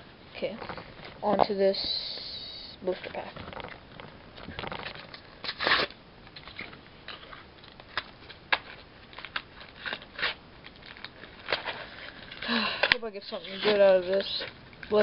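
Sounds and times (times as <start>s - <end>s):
plastic packaging crackling: 0.4s - 15.0s.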